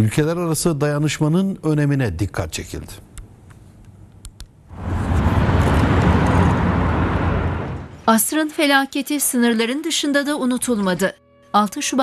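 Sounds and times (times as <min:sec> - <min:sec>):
loud steady rumbling: 0:04.7 - 0:08.1.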